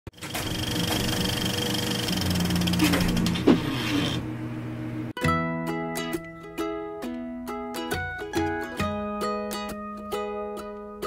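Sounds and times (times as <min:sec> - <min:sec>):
engine running with pulsing hum: 0:00.4 - 0:05.1.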